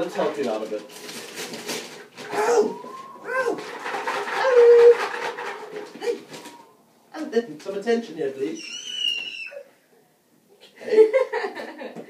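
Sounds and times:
wrapping paper tearing: 0.4 - 2.7
dog whining: 2.2 - 3.7, 8.6 - 9.7.

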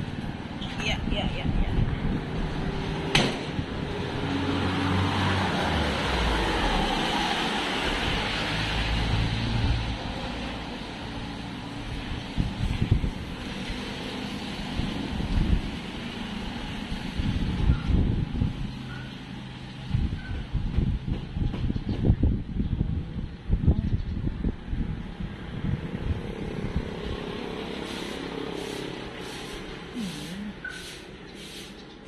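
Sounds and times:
wind buffeting microphone: 0.0 - 4.4, 11.7 - 19.1, 19.7 - 28.0
vehicle passing: 0.9 - 17.6, 24.9 - 31.7.

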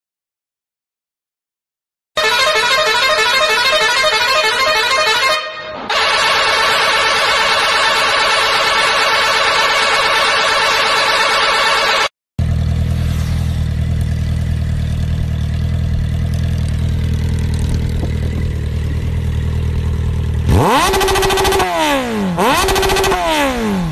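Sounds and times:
motorcycle engines idling: 12.4 - 23.9
engine revving sharply: 20.4 - 23.9.

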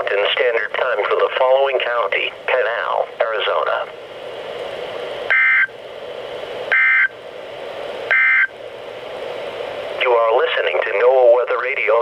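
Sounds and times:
radio hiss: 0.0 - 5.7, 9.4 - 12.0
buzzy two-tone digital squawks: 5.3 - 5.7, 6.7 - 7.1, 8.1 - 8.5.

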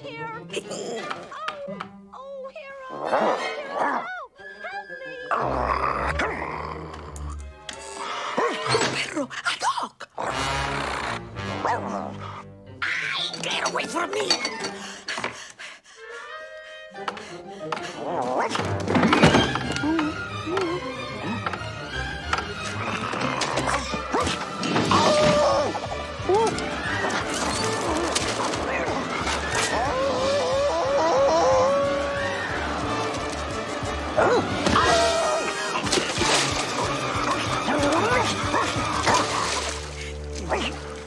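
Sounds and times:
orchestral film music: 3.5 - 9.2, 10.2 - 15.2, 15.9 - 41.0.

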